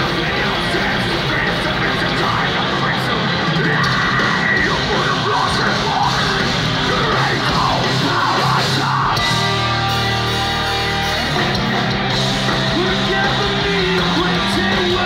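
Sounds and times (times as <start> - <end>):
heavy metal band playing: 0.0 - 15.0
shouted vocals: 0.0 - 15.0.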